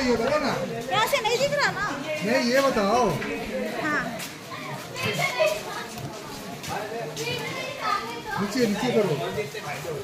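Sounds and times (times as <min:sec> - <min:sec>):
children and people chattering: 0:00.0 - 0:10.0.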